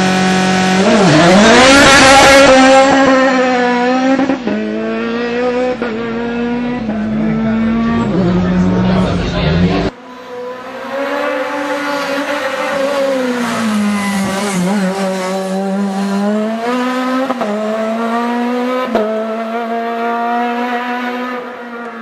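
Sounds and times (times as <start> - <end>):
race car engine revving: 0.0 - 22.0.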